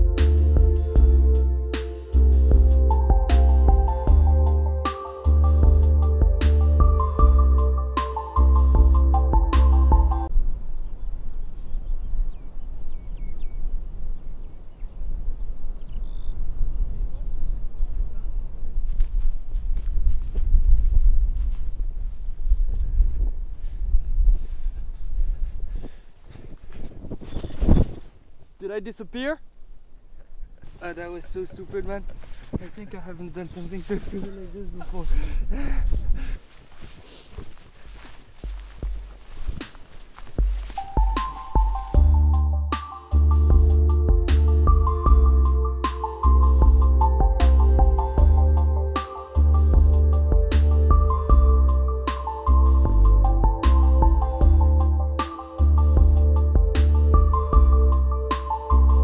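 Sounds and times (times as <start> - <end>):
background music: 0.0 - 10.3, 38.5 - 59.0
deep bass notes: 0.0 - 10.7, 40.4 - 59.0
wind buffeting microphone: 10.3 - 28.3, 31.3 - 39.7
footsteps through dry grass: 18.2 - 28.6, 29.5 - 42.6
man laughing: 30.2 - 32.2, 34.1 - 36.4.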